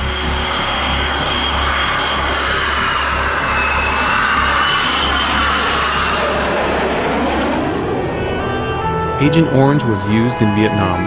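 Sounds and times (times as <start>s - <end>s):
jet engine rush and whine: 0.0s - 10.4s.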